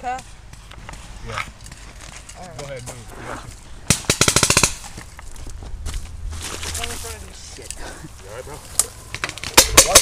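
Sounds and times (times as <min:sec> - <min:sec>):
paintball marker firing: 0:03.8 - 0:05.0.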